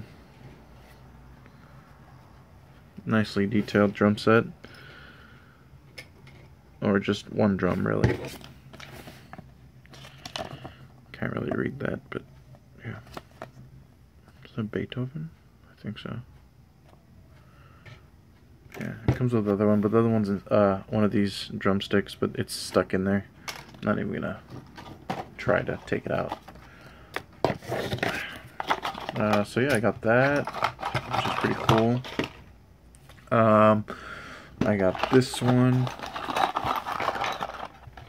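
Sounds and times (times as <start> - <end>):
paper card rustling: 27.4 - 29.5, 30.2 - 32.4, 34.6 - 38.0.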